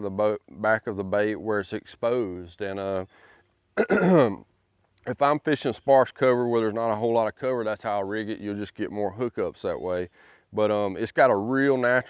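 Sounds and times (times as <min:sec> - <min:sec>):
man clearing his throat: 0:03.8 - 0:04.4.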